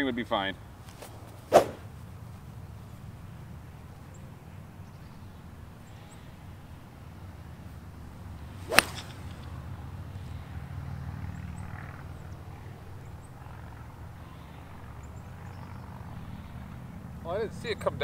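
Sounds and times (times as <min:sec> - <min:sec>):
golf club striking ball: 0:00.9 - 0:01.9, 0:08.6 - 0:09.7.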